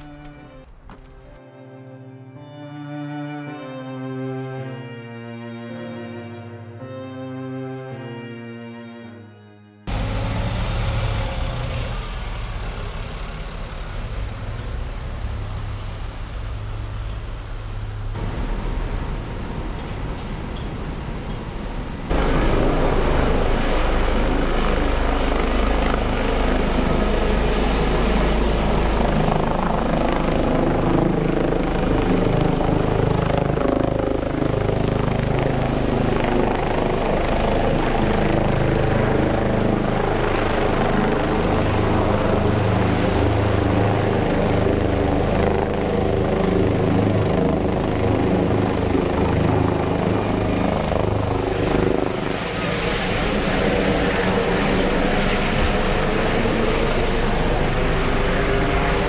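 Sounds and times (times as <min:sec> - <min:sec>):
helicopter engine and rotor: 0:09.8 - 0:59.0.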